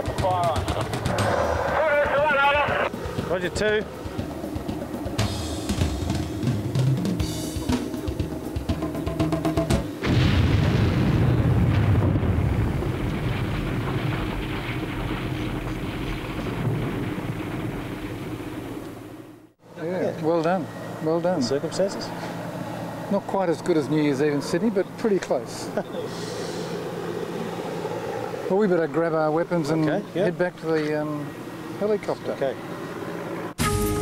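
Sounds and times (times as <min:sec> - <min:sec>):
music with drums: 0:00.0 - 0:10.0, 0:33.6 - 0:34.0
loud underwater explosion blast: 0:10.0 - 0:18.8.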